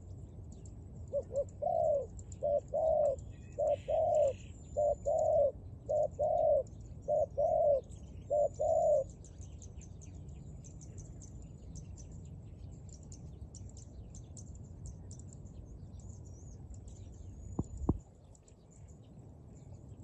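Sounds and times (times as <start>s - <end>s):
dove cooing: 1.1s - 9.1s.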